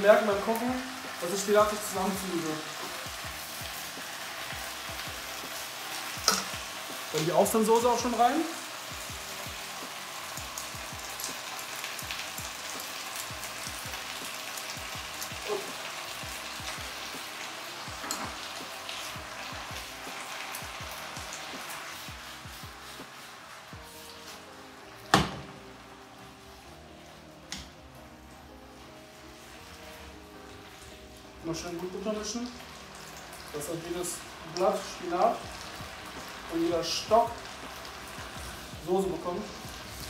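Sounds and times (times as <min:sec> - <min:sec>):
vegetables sizzling in a pan: 0:00.0 - 0:40.0.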